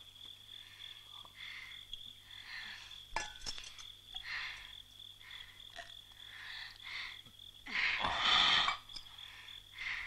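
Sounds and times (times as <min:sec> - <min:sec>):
high insect drone: 0:00.0 - 0:10.0.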